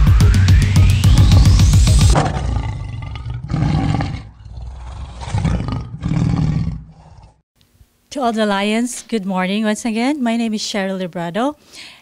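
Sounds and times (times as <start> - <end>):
lion roaring: 2.2 - 7.4.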